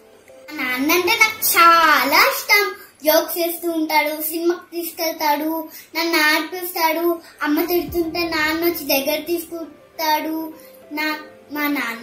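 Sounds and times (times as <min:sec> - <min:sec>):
girl singing: 0:07.4 - 0:11.0.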